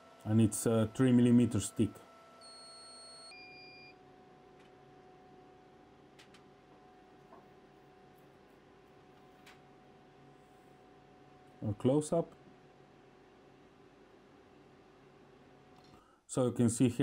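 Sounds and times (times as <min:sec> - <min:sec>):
faint room hum: 0:00.0 - 0:17.0.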